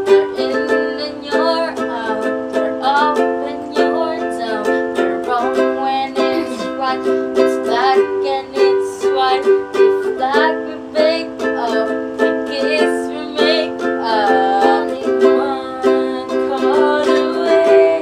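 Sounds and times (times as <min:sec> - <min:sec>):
girls singing: 0:00.0 - 0:18.0
ukulele strumming: 0:00.0 - 0:18.0.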